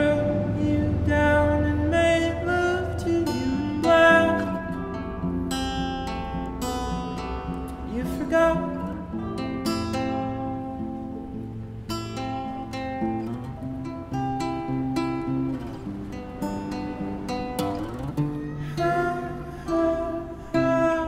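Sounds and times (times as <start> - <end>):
person singing: 0.0 - 6.4, 7.4 - 10.4, 17.8 - 21.0
acoustic guitar strummed and picked: 0.0 - 21.0.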